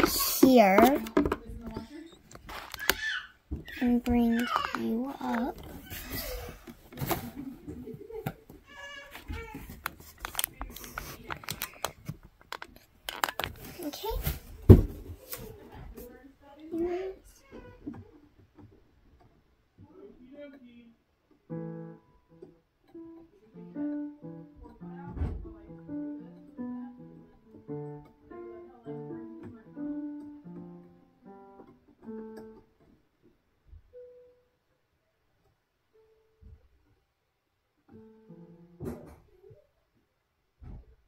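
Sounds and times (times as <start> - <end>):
child playing piano notes: 21.5 - 32.7.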